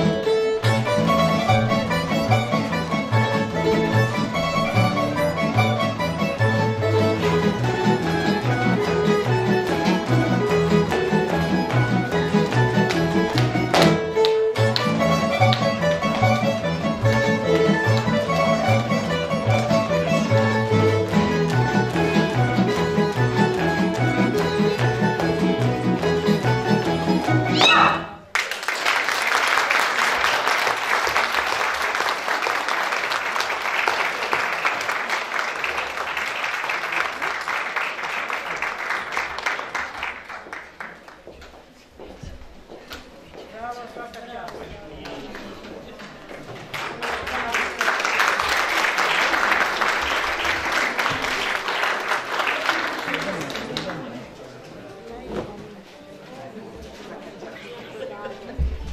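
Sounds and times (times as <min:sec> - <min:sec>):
folk string band playing: 0:00.0 - 0:28.3
audience applauding: 0:28.2 - 0:41.2, 0:46.0 - 0:54.2.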